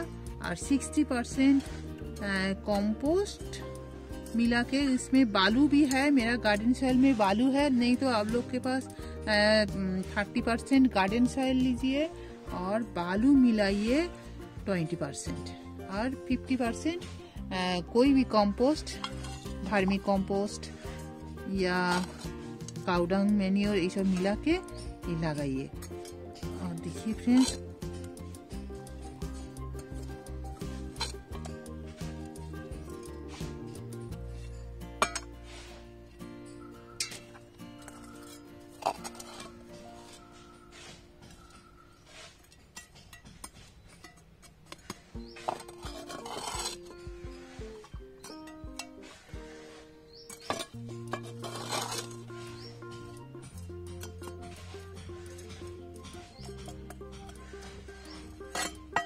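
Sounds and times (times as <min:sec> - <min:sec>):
background music: 0:00.0 - 0:42.8, 0:44.2 - 0:59.0
trowel scraping through soil: 0:00.0 - 0:59.0
metal trowel clinking: 0:04.2 - 0:11.8, 0:14.8 - 0:59.0.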